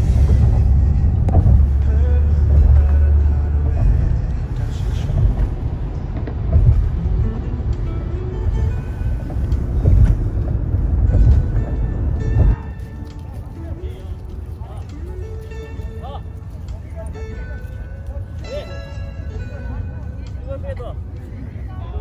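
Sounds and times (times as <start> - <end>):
background music: 0.0 - 22.0
road and engine rumble inside car: 0.0 - 22.0.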